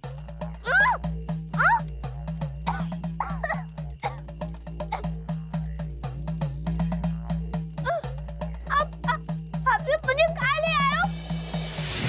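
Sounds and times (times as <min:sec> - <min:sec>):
dramatic percussion score: 0:00.0 - 0:12.0.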